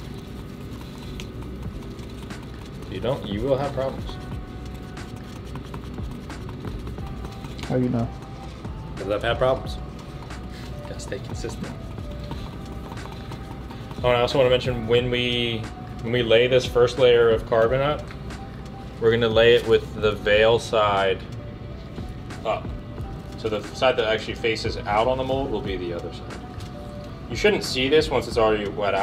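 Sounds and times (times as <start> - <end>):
wooden stick scraping paper cup: 0.0 - 15.7.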